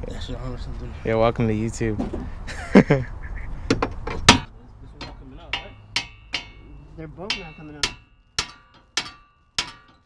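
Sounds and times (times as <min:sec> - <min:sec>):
hammer striking steel: 0:04.3 - 0:10.0.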